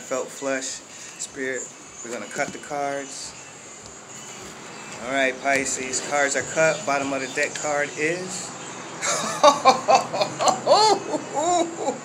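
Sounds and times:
man laughing and exclaiming: 0:09.0 - 0:12.0.

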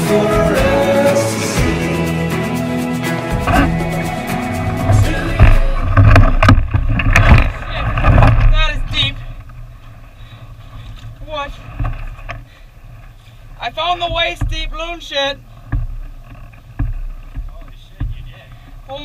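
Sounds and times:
short vocal sounds: 0:00.0 - 0:06.3
knocking and rumbling through canoe hull: 0:04.7 - 0:19.0.

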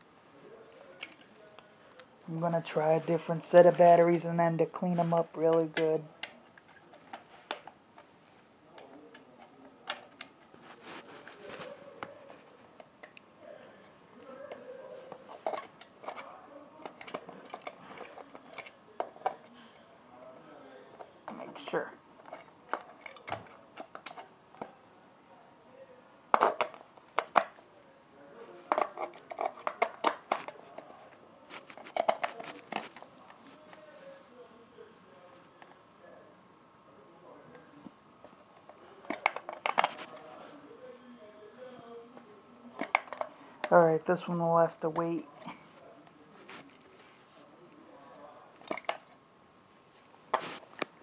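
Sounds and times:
plastic toy clicking and scraping: 0:14.5 - 0:19.6, 0:28.6 - 0:30.9, 0:31.6 - 0:33.1
plastic clattering: 0:38.6 - 0:40.2.

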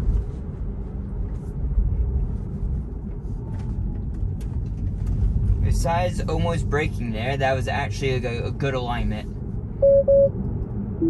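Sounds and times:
road and tyre rumble in car: 0:00.0 - 0:11.0.

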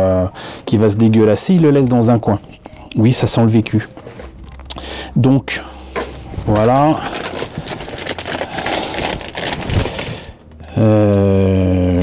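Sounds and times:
plastic bag crinkling: 0:03.8 - 0:05.1, 0:05.9 - 0:12.0.

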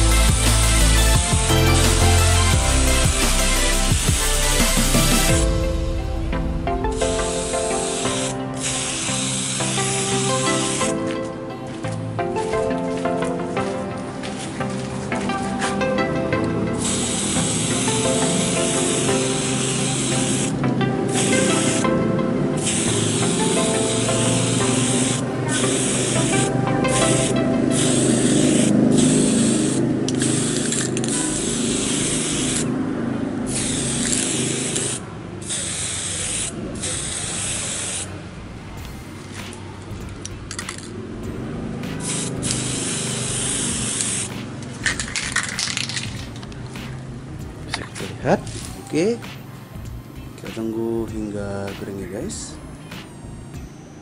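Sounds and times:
spray paint can hissing: 0:00.0 - 0:05.5, 0:06.9 - 0:13.4, 0:14.3 - 0:22.0, 0:22.6 - 0:32.8, 0:33.4 - 0:38.2, 0:38.8 - 0:51.0, 0:51.6 - 0:53.8.

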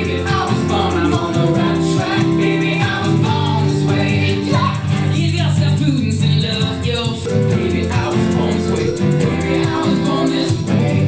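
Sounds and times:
egg shaker rhythm: 0:00.0 - 0:11.0
strummed guitar: 0:00.0 - 0:11.0.

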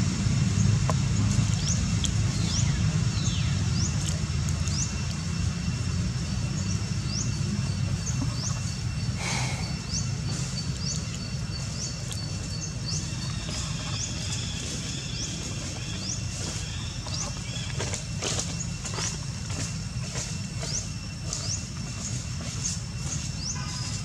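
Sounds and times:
faint high insect tone: 0:01.5 - 0:24.0
bird chirps: 0:06.2 - 0:19.1.

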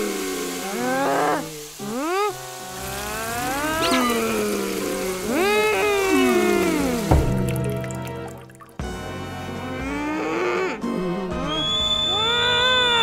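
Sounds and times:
background music of low notes: 0:00.0 - 0:13.0
cartoon character whiny cries: 0:12.1 - 0:13.0.

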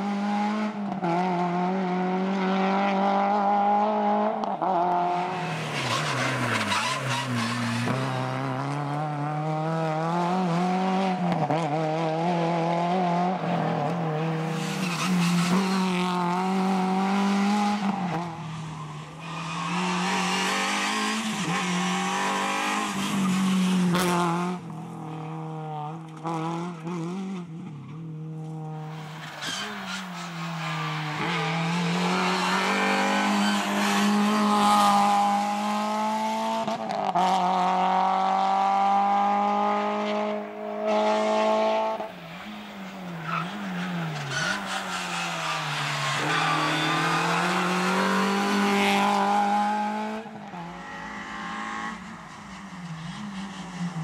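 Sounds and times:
rally car engine revving: 0:19.1 - 0:54.0.

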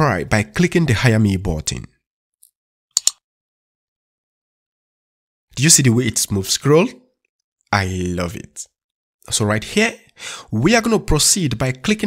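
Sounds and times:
computer mouse click: 0:03.0 - 0:03.2.

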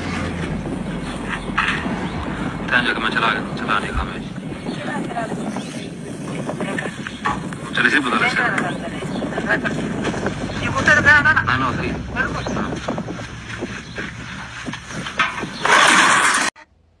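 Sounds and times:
low background rumble: 0:00.0 - 0:15.6
men talking: 0:02.3 - 0:05.2, 0:06.0 - 0:13.1.

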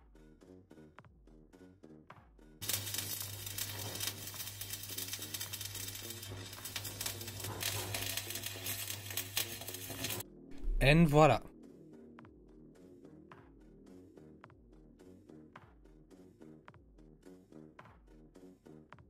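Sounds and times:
arc welding crackle and sizzle: 0:02.6 - 0:10.2
welder low hum: 0:02.6 - 0:11.5.

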